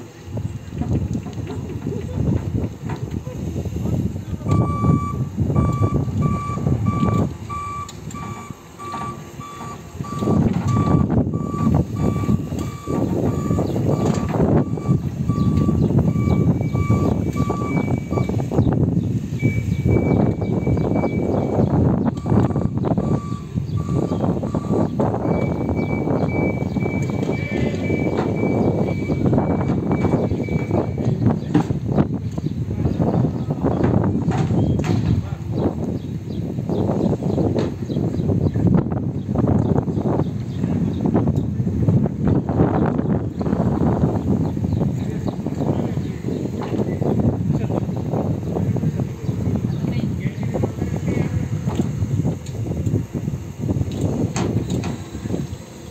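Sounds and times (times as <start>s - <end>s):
rough rumbling noise: 0.0s - 55.9s
truck warning beeper: 3.3s - 31.5s.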